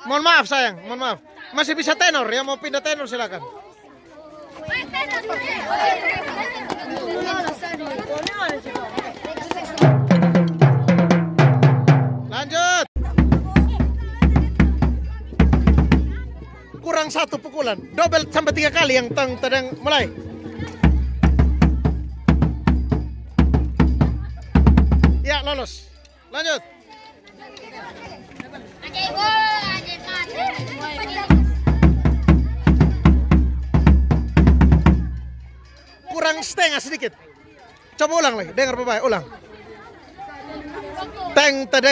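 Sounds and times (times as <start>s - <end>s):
voices: 0.0s - 11.2s, 12.2s - 41.9s
children chattering: 0.0s - 41.9s
marching bass drum beats: 9.8s - 17.2s, 17.8s - 26.0s, 30.6s - 35.7s
tenor drums struck with mallets: 9.8s - 26.1s, 30.6s - 35.8s.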